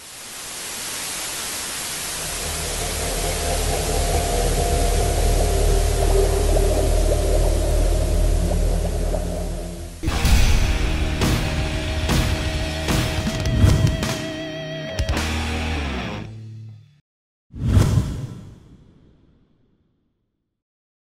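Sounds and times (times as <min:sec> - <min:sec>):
low hum: 0:02.0 - 0:12.8.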